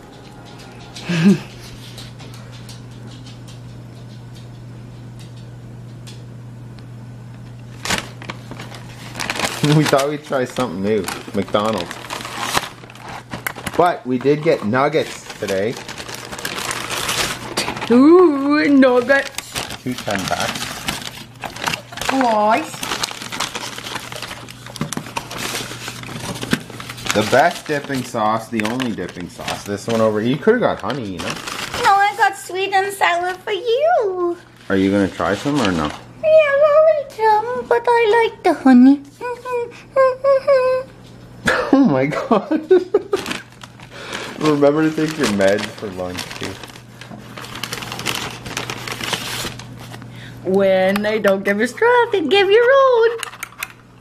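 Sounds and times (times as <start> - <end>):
faint steady hum: 0.0 - 54.0
cardboard boxes and packets rustling: 7.7 - 33.6, 34.4 - 36.1, 42.9 - 50.1.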